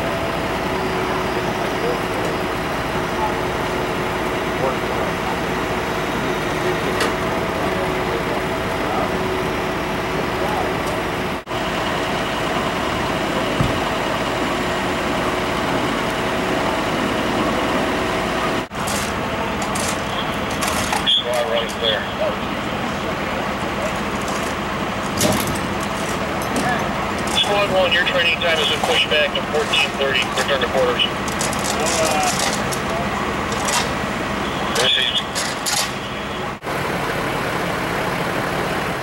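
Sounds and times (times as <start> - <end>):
vehicle engine idling: 0.0 - 39.0.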